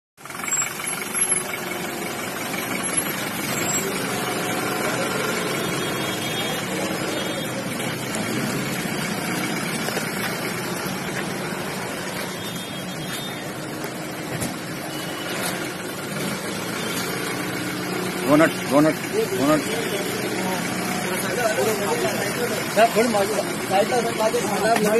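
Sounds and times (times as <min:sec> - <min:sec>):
van engine running: 0:00.2 - 0:24.9.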